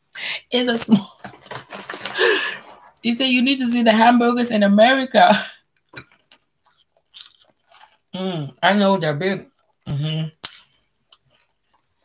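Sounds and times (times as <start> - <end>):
person chewing crunchy crackers: 5.8 - 8.2.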